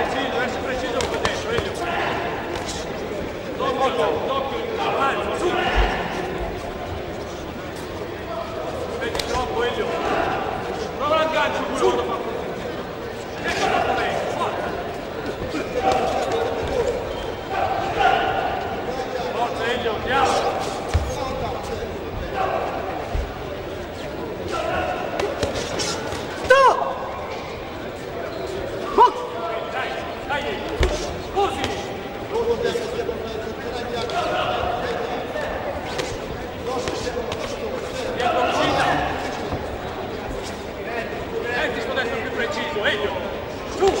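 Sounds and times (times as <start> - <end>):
shouted voices echoing: 0.0 - 44.0.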